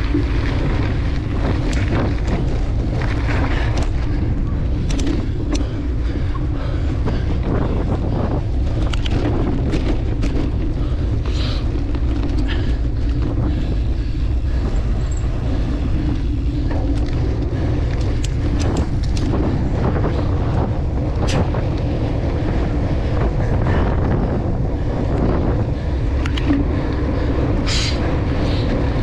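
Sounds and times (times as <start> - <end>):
wind rush on microphone: 0.0 - 29.0
sharp clicks and knocks: 4.8 - 5.7, 17.9 - 19.4.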